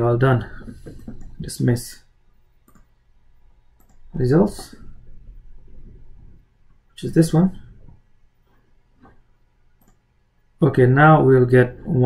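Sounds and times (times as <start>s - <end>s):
low steady hum: 0.0s - 12.0s
computer mouse clicks: 2.6s - 3.0s, 3.8s - 4.8s, 9.8s - 10.1s.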